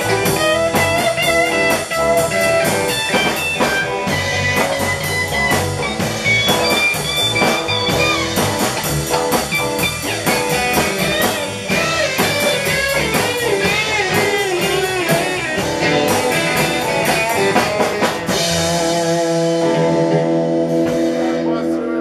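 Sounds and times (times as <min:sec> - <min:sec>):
bass: 0:00.0 - 0:22.0
drum kit: 0:00.0 - 0:22.0
electric guitar lead bending notes: 0:00.0 - 0:22.0.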